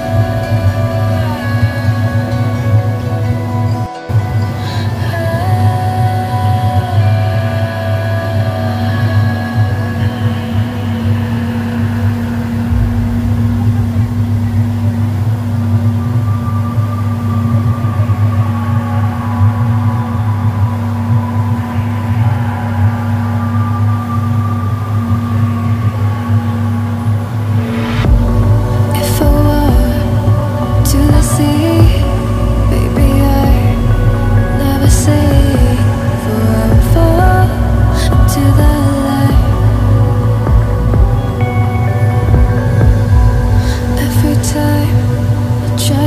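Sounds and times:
background music: 0.0 - 46.0.

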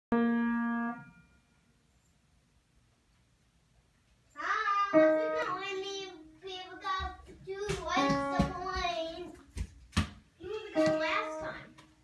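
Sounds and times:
piano note: 0.1 - 1.6.

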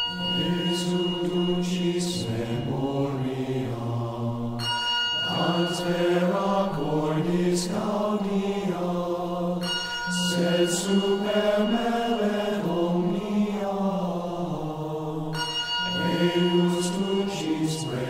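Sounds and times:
ringing bell-like tone: 0.0 - 18.0
men chanting in low voices: 0.3 - 9.7, 10.3 - 15.4, 16.0 - 18.0.

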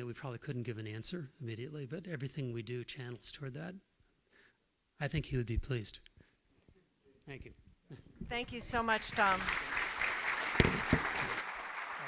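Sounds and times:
audience applauding: 8.6 - 12.0.

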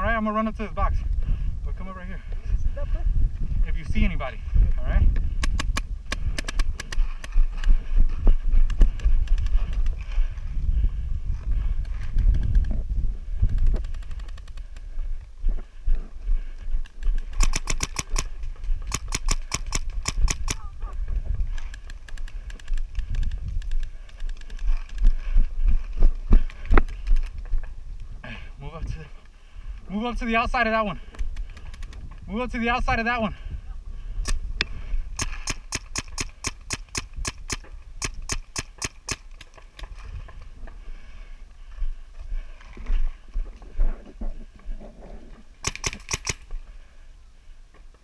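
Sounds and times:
paintball markers firing: 5.3 - 7.6, 16.9 - 20.7, 35.2 - 39.8, 45.6 - 46.5.

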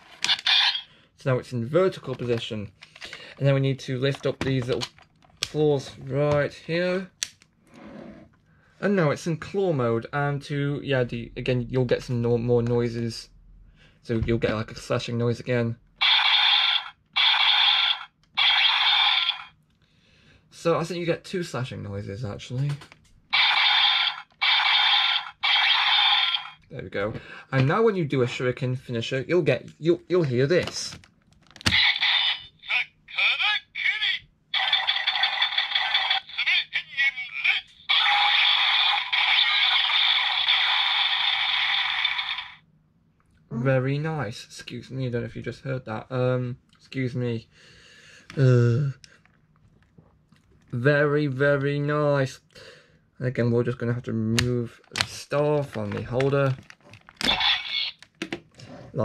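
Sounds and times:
hard plastic scraping: 54.8 - 59.0.

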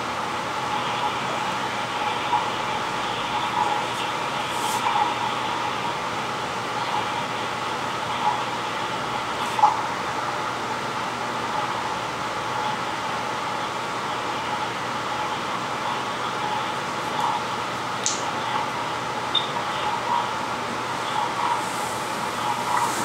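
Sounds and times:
mechanical room hiss and hum: 0.0 - 23.0.

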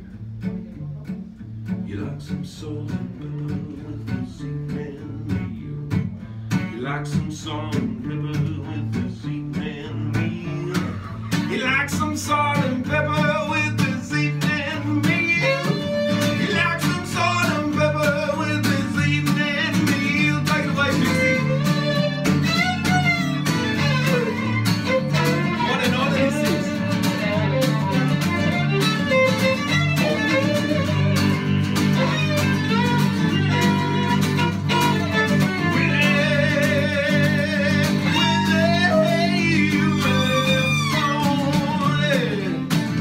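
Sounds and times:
acoustic guitar strummed: 0.0 - 43.0
fiddle melody: 12.3 - 43.0.

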